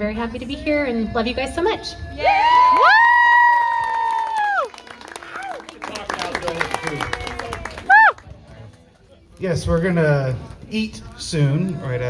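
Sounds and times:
crowd whooping: 2.2s - 8.3s
people clapping: 2.6s - 10.6s.

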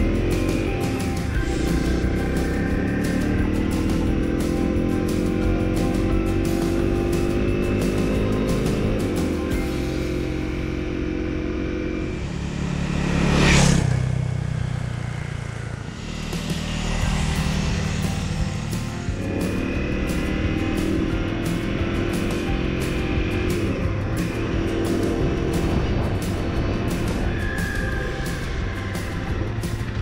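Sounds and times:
music: 0.0s - 13.7s, 15.8s - 30.0s
motorcycle engine running: 0.0s - 30.0s.

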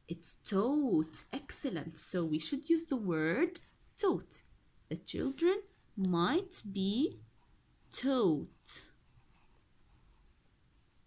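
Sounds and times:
pencil scratching on paper: 7.1s - 11.0s.

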